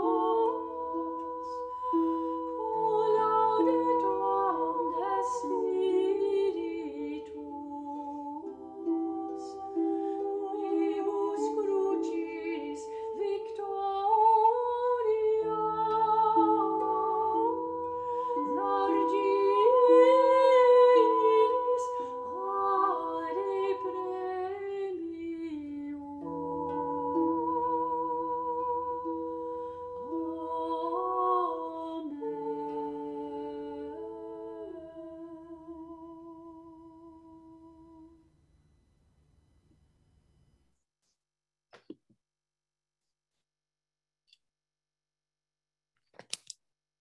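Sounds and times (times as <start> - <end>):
woman humming a melody: 0.0 - 38.2.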